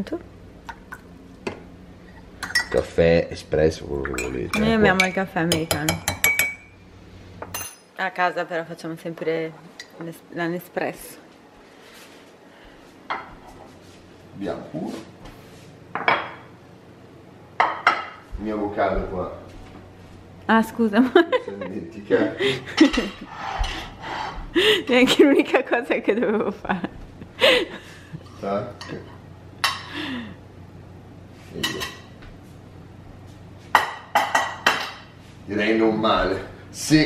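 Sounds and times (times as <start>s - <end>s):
cutlery clinking on plates: 31.6s - 32.1s.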